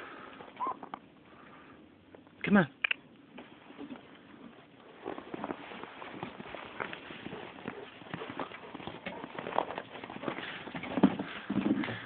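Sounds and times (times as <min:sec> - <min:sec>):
footsteps crunching through snow: 0:03.4 - 0:11.4.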